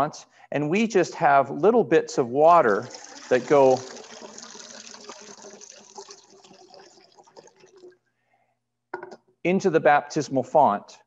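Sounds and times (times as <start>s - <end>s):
water pouring into metal bowl: 2.4s - 8.0s.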